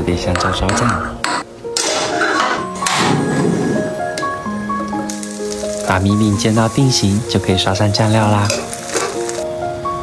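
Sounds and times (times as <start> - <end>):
melodic background music: 0.0 - 10.0
hot oil crackling in a pan: 4.9 - 9.5.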